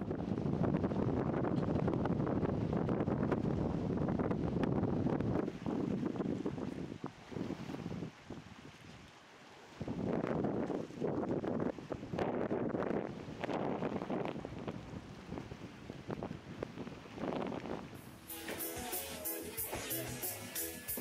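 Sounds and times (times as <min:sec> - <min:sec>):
wind buffeting microphone: 0:00.0 - 0:18.3
music with a beat: 0:18.2 - 0:21.0.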